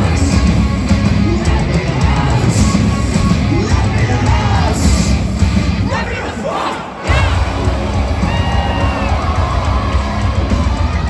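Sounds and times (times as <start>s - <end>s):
crowd shouting and screaming: 0.0s - 11.0s
heavy drums and guitars: 0.0s - 11.0s
metal band playing live: 0.0s - 11.0s.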